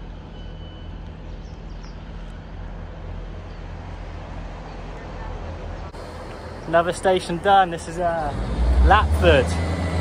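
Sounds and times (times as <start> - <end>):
diesel train engine idling: 0.0 - 8.4.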